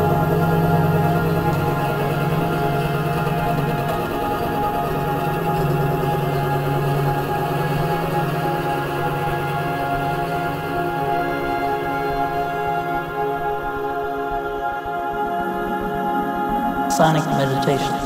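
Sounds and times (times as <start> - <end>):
experimental drone music: 0.0 - 18.0.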